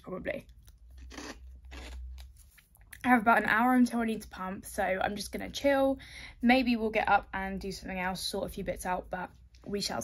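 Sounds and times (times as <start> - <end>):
person chewing potato crisps: 0.3 - 3.0.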